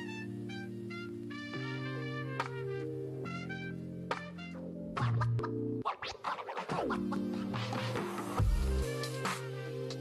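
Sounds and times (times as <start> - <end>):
background music held chords: 0.0 - 10.0.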